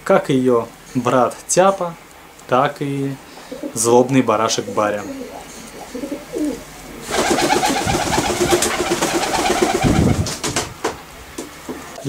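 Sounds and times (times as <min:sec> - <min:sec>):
pigeon cooing: 0:03.4 - 0:10.3
rustle of feathers: 0:06.4 - 0:11.0.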